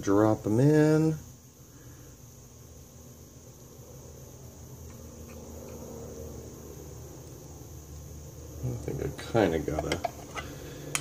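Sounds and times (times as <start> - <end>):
steady high-pitched hiss: 0.0 - 11.0.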